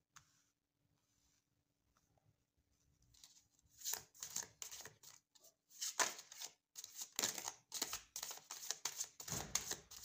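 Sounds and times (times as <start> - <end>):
cards being shuffled: 3.2 - 5.2, 5.8 - 10.0.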